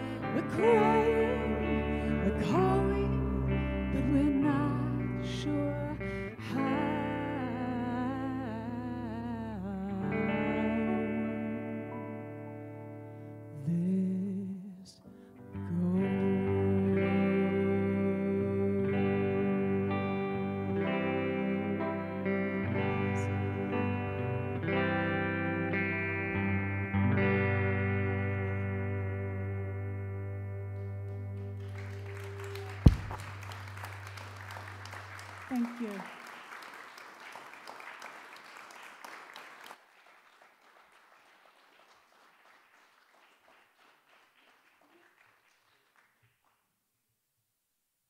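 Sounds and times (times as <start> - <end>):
woman singing: 0.0 - 11.8, 13.6 - 24.2
audience applause: 31.1 - 46.6
loud thump: 32.8 - 33.2.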